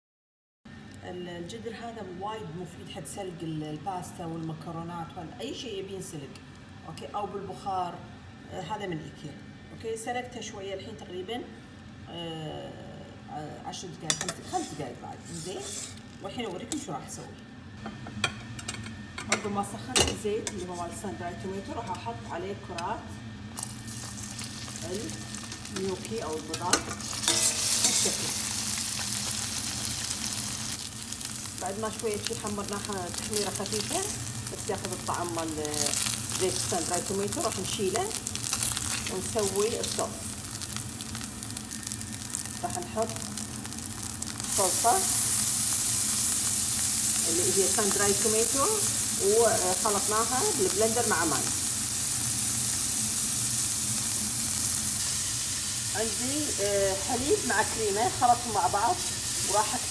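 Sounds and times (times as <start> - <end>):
gnocchi sizzling in oil: 13.0 - 59.9.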